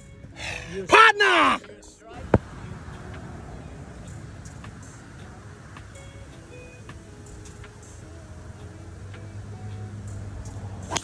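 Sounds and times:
golf club striking ball: 0:09.1 - 0:11.0.

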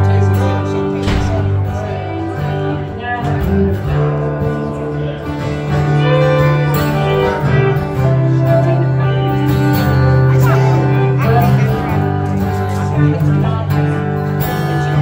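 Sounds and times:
acoustic guitars strummed and picked: 0:00.0 - 0:15.0
low bass line: 0:00.0 - 0:15.0.

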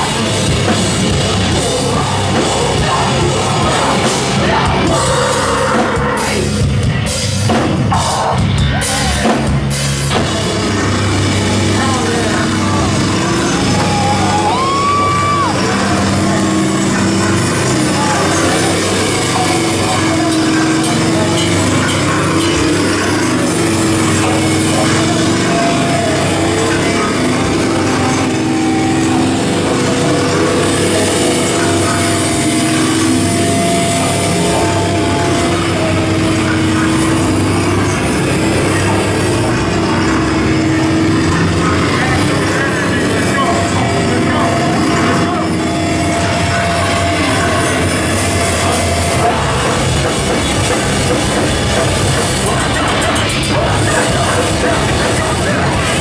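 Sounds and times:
amplifier drone: 0:00.0 - 0:56.0
distorted guitar chords: 0:00.0 - 0:56.0
drums and cymbals: 0:00.0 - 0:56.0
voices in room: 0:07.9 - 0:56.0.

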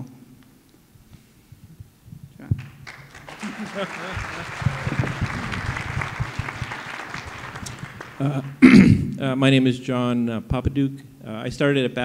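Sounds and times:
audience applauding: 0:02.6 - 0:08.8
audience laughter: 0:03.2 - 0:08.6.

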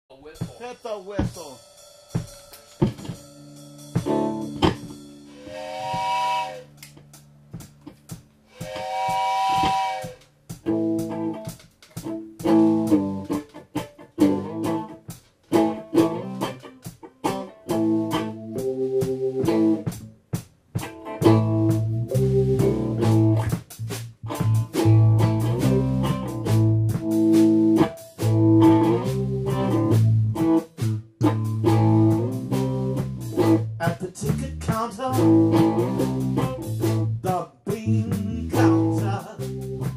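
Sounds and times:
drums: 0:00.0 - 0:39.9
electric guitar riff: 0:02.1 - 0:07.0, 0:08.5 - 0:20.1, 0:20.8 - 0:37.2
heavy bass guitar line: 0:02.8 - 0:08.2, 0:10.5 - 0:39.9
train whistle blasts: 0:05.3 - 0:06.9, 0:08.5 - 0:10.3.

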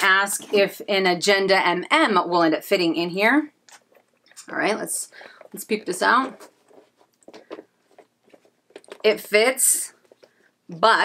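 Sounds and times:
handbag rustling: 0:04.6 - 0:10.4.

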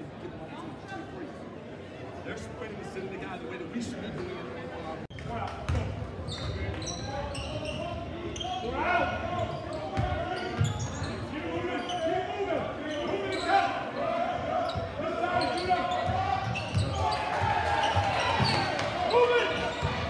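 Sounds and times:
crowd talking and calling out: 0:00.0 - 0:20.0.

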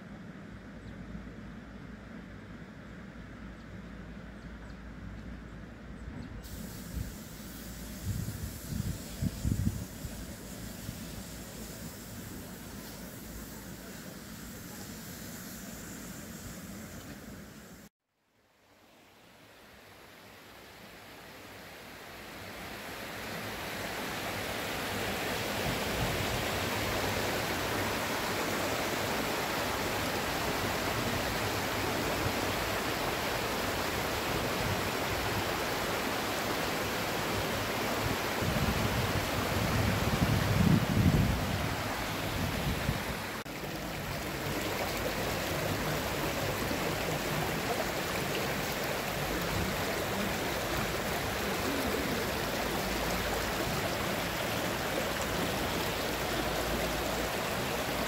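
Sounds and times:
stream rushing over stones: 0:20.8 - 0:58.0.

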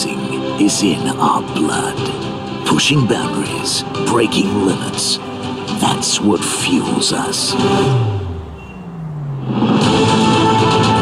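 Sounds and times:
music: 0:00.0 - 0:11.0
racing motorcycle passing by: 0:06.8 - 0:11.0.

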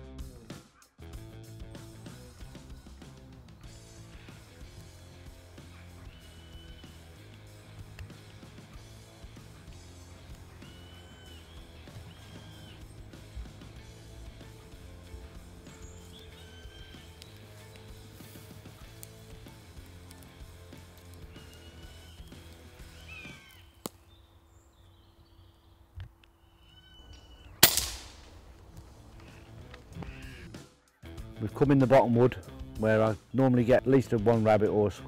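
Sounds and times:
background music: 0:00.0 - 0:23.5, 0:27.6 - 0:35.0
birds calling: 0:01.7 - 0:31.6
air rifle firing: 0:27.6 - 0:28.5.

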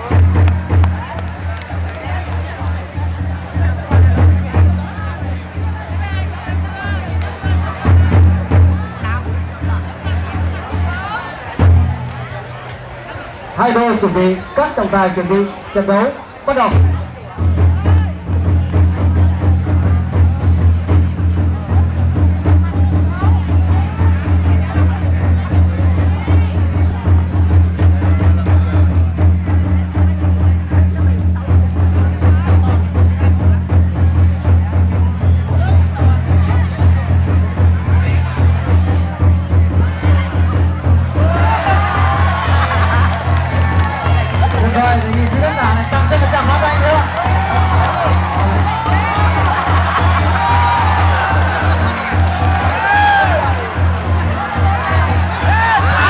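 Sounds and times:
drum beaten in fast rhythm: 0:00.0 - 0:12.1, 0:16.5 - 0:56.0
faint crowd voices: 0:00.0 - 0:56.0.

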